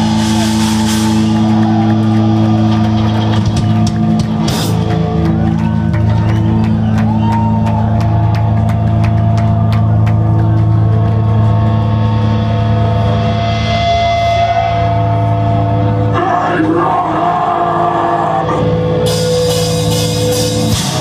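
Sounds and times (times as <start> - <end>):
rock band playing droning passage: 0.0 - 21.0.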